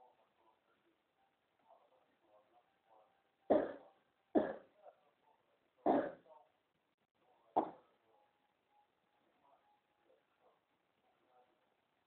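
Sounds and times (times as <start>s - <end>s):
woman coughing: 3.5s - 3.8s, 4.4s - 4.6s, 5.9s - 6.2s.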